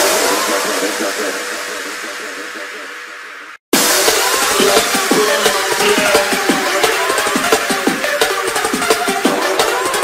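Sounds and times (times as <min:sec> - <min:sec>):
hissing synth wash: 0:00.1 - 0:08.9.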